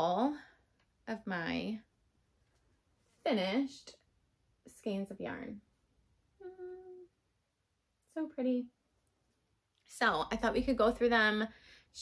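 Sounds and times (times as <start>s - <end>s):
woman humming: 6.4s - 7.2s.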